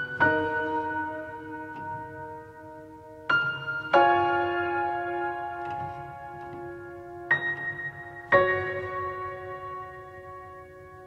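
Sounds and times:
soft solo piano music: 0.0 - 11.0.

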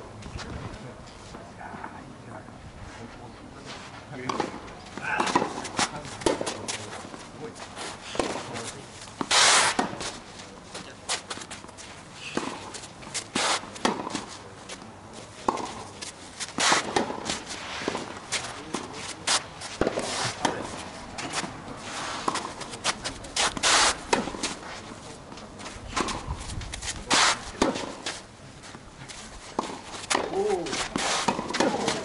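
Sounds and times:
footsteps and shoe scuffs on court: 2.8 - 32.0
racket striking tennis ball: 4.3 - 6.8, 8.1 - 8.5, 9.2 - 10.2, 12.3 - 14.3, 15.5 - 21.5, 22.2 - 24.6, 25.9 - 28.2, 29.6 - 32.0.

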